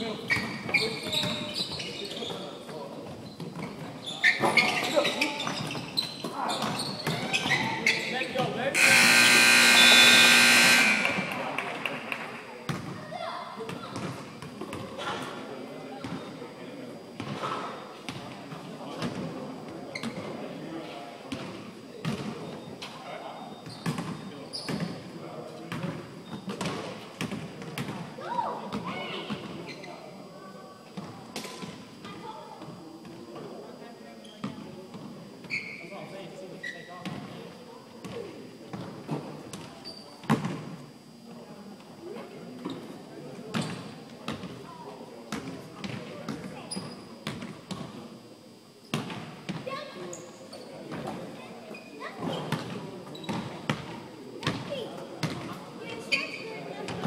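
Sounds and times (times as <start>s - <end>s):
players' voices echoing: 6.5s - 15.1s
scoreboard buzzer: 8.7s - 11.7s.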